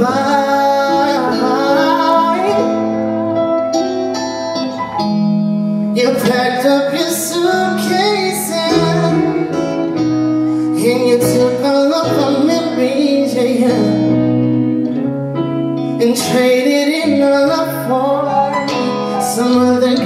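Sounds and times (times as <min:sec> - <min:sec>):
person singing: 0:00.0 - 0:04.8, 0:05.8 - 0:14.9, 0:15.7 - 0:20.0
electric guitar: 0:00.0 - 0:20.0
keyboard chords: 0:00.0 - 0:20.0.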